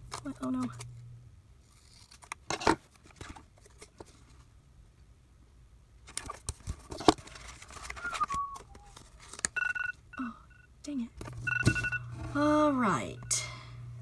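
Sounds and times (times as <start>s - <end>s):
stickers being peeled: 1.6s - 2.5s
timer alarm beeping: 9.6s - 10.7s, 11.4s - 13.6s.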